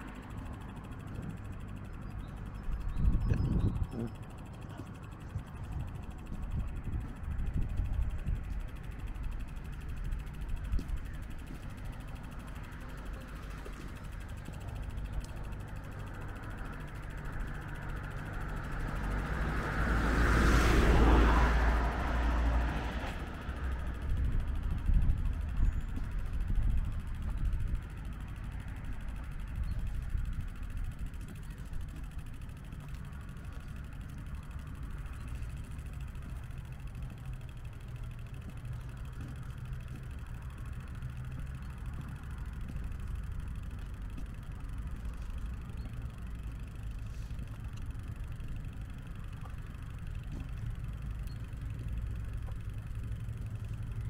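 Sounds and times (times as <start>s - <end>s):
low outdoor rumble: 0.0s - 54.0s.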